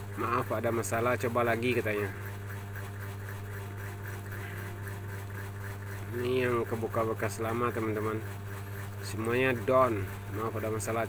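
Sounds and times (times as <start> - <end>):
steady low hum: 0.0 - 11.0
narration: 6.0 - 8.3, 9.0 - 11.0.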